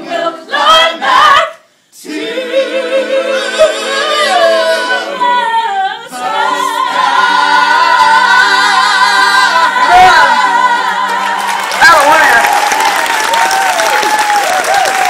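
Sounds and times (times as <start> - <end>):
gospel choir singing: 0.0 - 11.9.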